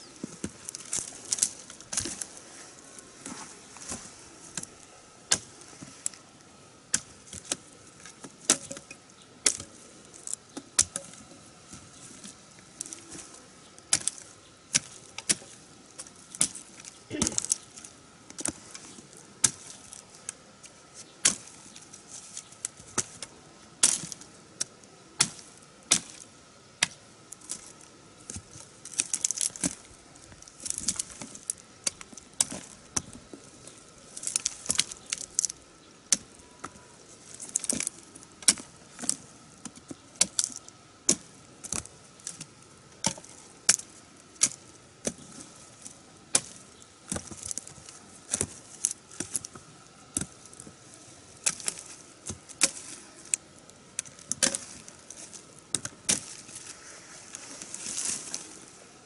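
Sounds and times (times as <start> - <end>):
rustling dry stalks: 0.0 - 59.0
knife chopping roots: 16.3 - 17.6.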